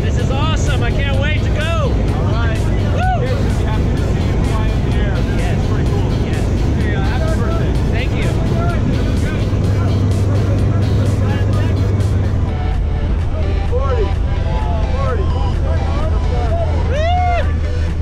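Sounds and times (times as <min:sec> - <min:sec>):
plane engine and propeller drone: 0:00.0 - 0:16.9
low hum: 0:00.0 - 0:18.0.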